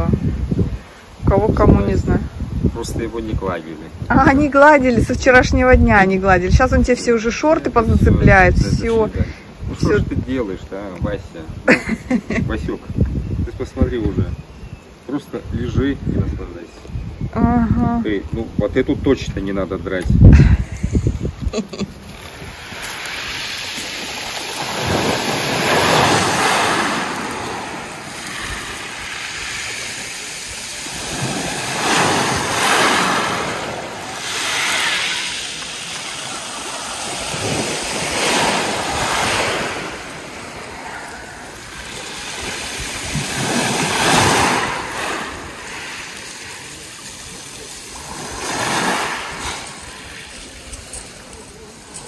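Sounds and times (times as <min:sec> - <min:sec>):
waves washing up pebble beach: 0:21.9 - 0:52.0.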